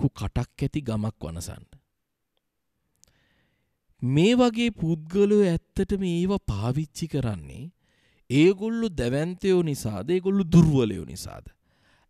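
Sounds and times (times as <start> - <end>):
man speaking into a microphone: 0.0 - 1.8, 4.0 - 11.6.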